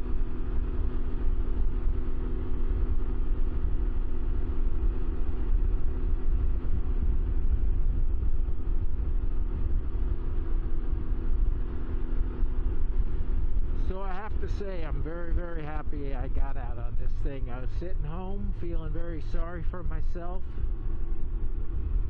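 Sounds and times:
engine drone: 0.0s - 22.0s
wind rumble on microphone: 0.0s - 22.0s.

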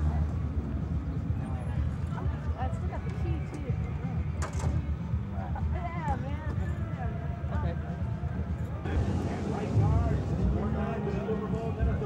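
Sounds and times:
people talking indistinctly: 0.0s - 12.0s
low uneven rumble: 8.6s - 12.0s.

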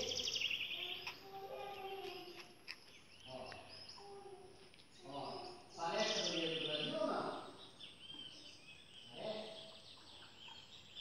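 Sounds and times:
faint bird chirps: 0.0s - 11.0s
quiet garden background noise: 0.0s - 11.0s.

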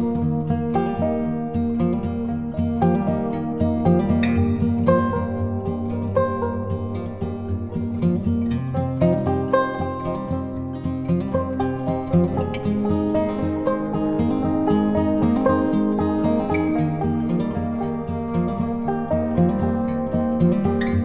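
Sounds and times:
calm acoustic guitar music: 0.0s - 21.0s.

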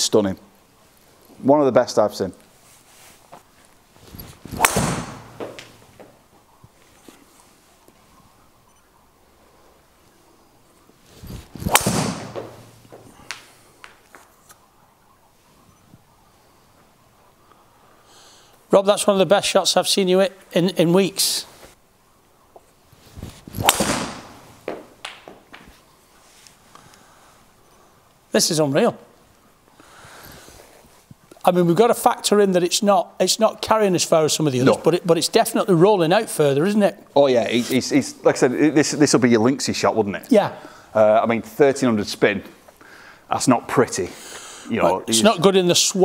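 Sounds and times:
golf club swing whoosh: 4.0s - 6.0s, 11.1s - 13.6s, 23.0s - 24.7s
golf club hitting ball: 4.5s - 6.1s, 11.5s - 14.3s, 23.5s - 25.4s.

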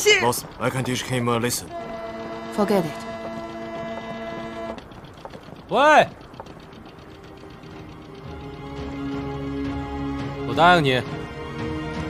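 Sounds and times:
faint rapid ticking: 0.0s - 12.0s
low background hum: 0.0s - 12.0s.

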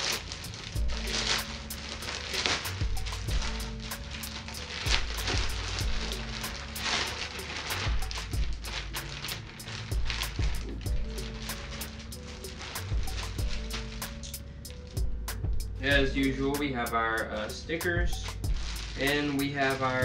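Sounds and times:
packaging rustling and crinkling: 0.0s - 16.6s, 18.1s - 20.0s
background music with ticking beat: 0.0s - 20.0s.

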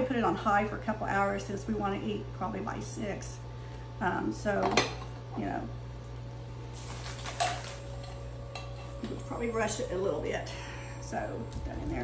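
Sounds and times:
steady low hum: 0.0s - 12.0s
kitchenware clinking on countertop: 7.1s - 7.8s.

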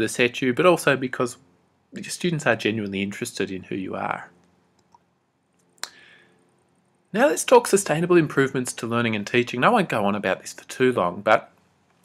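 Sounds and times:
faint breath-like sound: 5.9s - 6.6s.

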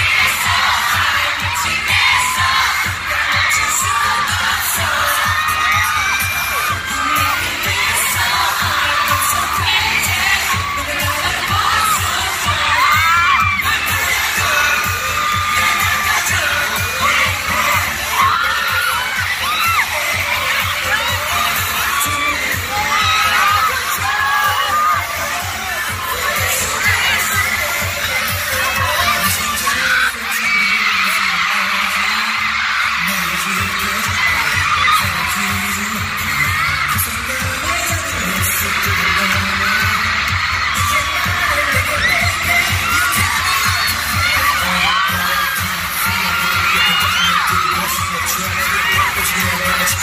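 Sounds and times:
crowd screaming and cheering: 0.0s - 50.0s
pop dance track over sound system: 0.0s - 50.0s.

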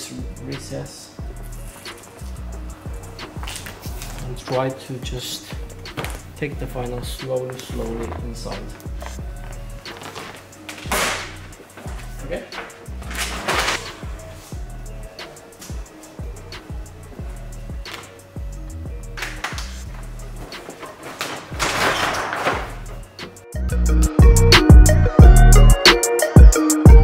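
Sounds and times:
background music with bass line: 0.0s - 20.8s, 21.6s - 27.0s
squeegee scraping on vinyl film: 3.0s - 4.8s, 19.2s - 23.0s.

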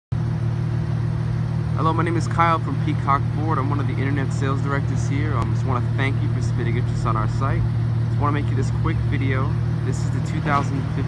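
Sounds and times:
vehicle engine idling: 0.1s - 11.0s
man speaking: 1.8s - 11.0s.

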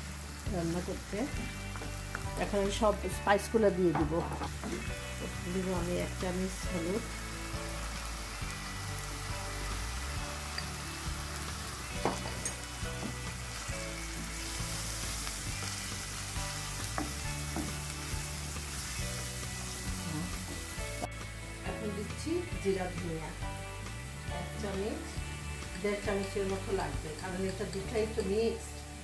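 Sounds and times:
paste sizzling in oil: 0.0s - 21.6s
wooden spoon knocking pan: 16.9s - 17.8s.

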